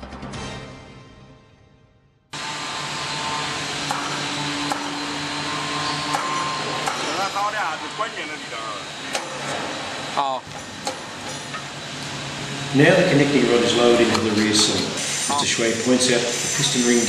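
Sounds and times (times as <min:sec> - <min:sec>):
music: 0:00.0 - 0:02.4
factory machinery hum and hiss: 0:02.4 - 0:17.0.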